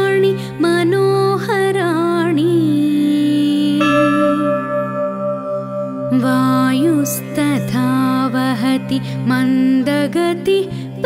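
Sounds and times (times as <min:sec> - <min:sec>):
steady ringing tone: 0:03.6 - 0:09.8
held sung note: 0:03.7 - 0:08.5.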